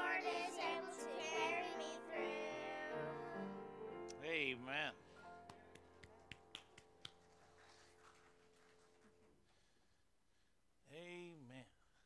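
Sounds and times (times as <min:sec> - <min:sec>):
held piano chord: 0:00.0 - 0:05.8.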